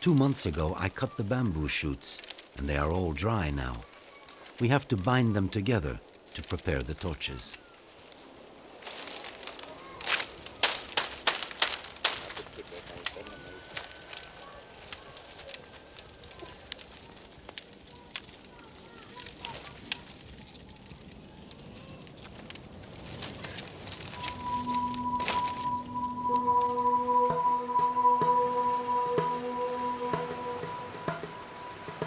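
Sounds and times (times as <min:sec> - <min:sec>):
bamboo crackling and snapping: 0:00.0 - 0:26.9
soft music: 0:24.2 - 0:32.0.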